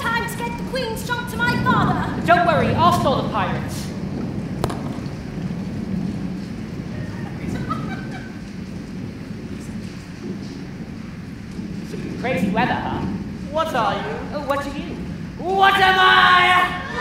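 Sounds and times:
low rumble of thunder: 0.0s - 17.0s
rain: 0.0s - 17.0s.

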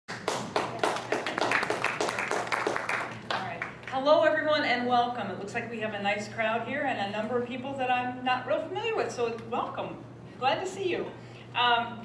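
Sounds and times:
hands clapping: 0.1s - 4.0s.

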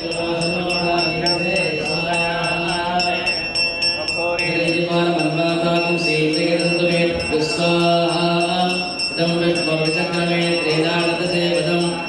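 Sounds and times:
men chanting mantras: 0.0s - 12.0s.

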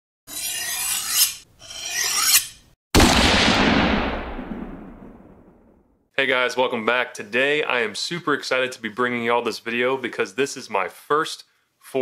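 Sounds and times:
rasping scrape strokes: 0.3s - 2.7s.

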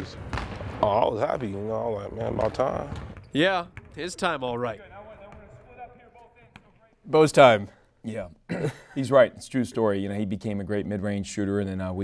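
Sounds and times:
basketball bouncing on court: 0.1s - 0.8s, 2.2s - 4.3s, 4.9s - 5.7s.

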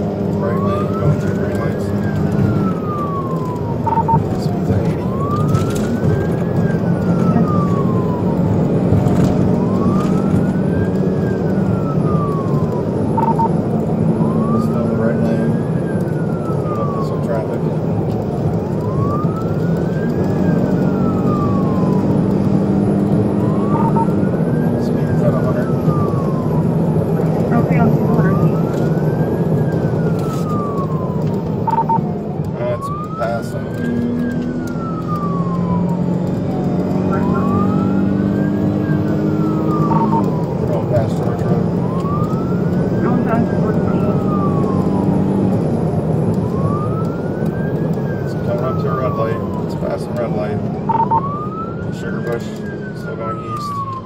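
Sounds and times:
car engine and road noise: 0.0s - 54.0s
police siren wailing: 0.0s - 54.0s.

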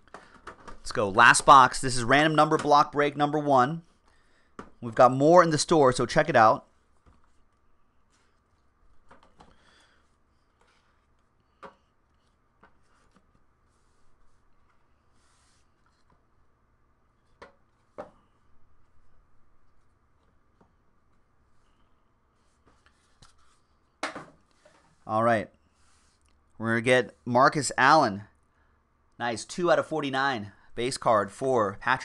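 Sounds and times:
faint cardboard rustling: 6.6s - 26.4s.

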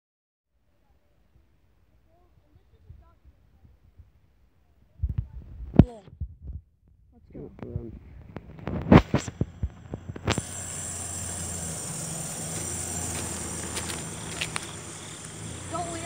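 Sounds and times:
shrill insect chorus: 10.2s - 16.0s.

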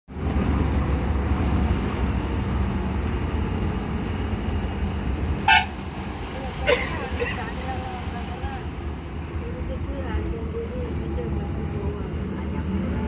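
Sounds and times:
vehicle road and engine rumble: 0.1s - 13.0s
vehicle horn toot: 5.4s - 5.7s.

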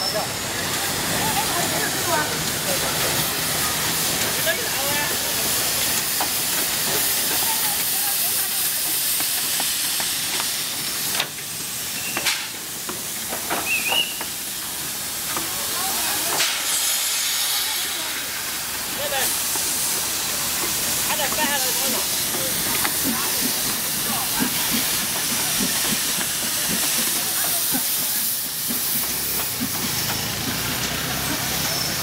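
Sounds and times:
steam locomotive hissing steam: 0.0s - 32.0s.

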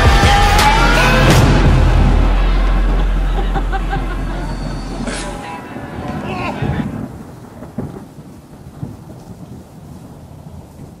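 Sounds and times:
low rumbling noise: 0.0s - 11.0s.

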